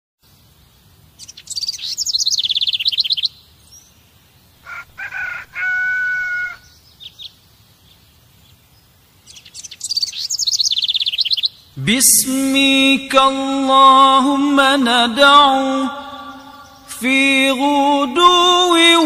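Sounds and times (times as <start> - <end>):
songbird trill: 0.2 - 19.0
short bird chirps: 1.2 - 3.9, 9.3 - 11.6
rooster crowing: 4.6 - 6.7.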